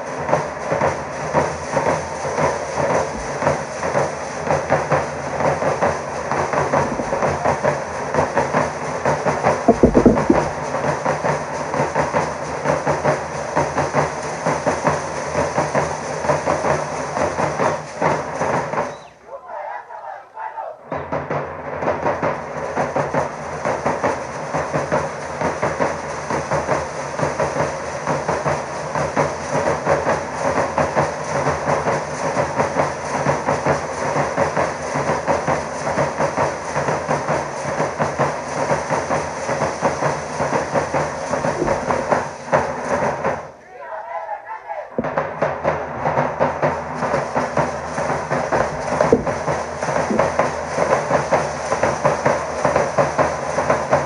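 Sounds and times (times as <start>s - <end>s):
bass and snare drums beating: 0.0s - 19.2s, 20.9s - 43.6s, 44.8s - 54.0s.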